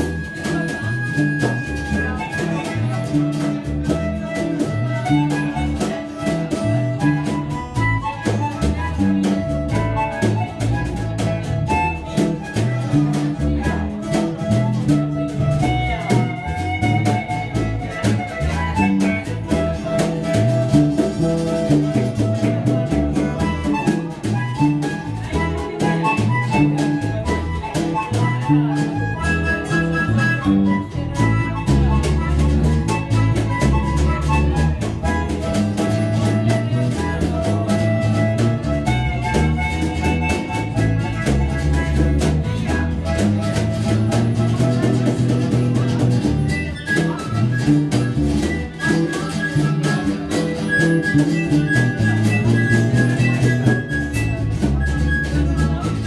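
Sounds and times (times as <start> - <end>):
funk band playing live: 0.0 - 56.0.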